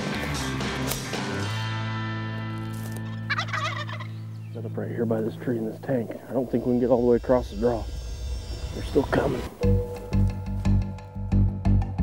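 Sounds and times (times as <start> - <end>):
turkey gobbling: 3.0 - 6.7
steady low tone: 4.2 - 12.0.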